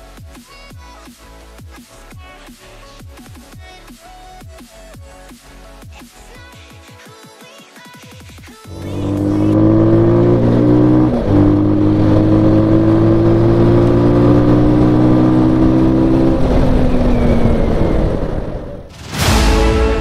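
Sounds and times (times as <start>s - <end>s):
motorcycle engine accelerating: 8.7s - 18.9s.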